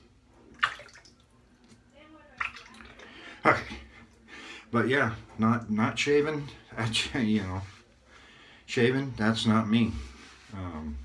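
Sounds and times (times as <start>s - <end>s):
water splashed by hand: 0.6s - 1.2s.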